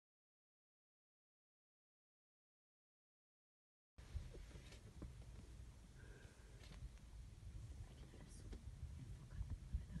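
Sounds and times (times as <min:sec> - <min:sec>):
low steady rumble: 0:04.0 - 0:10.0
soft hiss: 0:04.0 - 0:10.0
faint whispering voices: 0:07.7 - 0:10.0.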